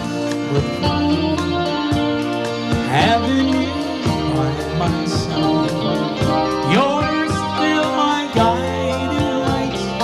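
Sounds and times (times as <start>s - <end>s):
live band playing country ballad: 0.0s - 10.0s.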